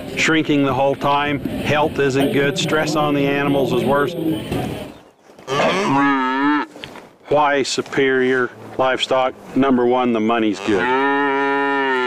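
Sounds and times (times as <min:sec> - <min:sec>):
cow mooing: 0:02.0 - 0:04.6, 0:05.5 - 0:06.8, 0:10.4 - 0:12.0.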